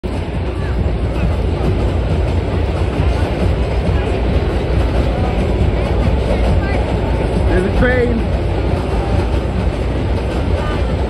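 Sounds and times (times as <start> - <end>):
crowd chatter: 0.0 - 11.0
train rumbling over bridge: 0.0 - 11.0.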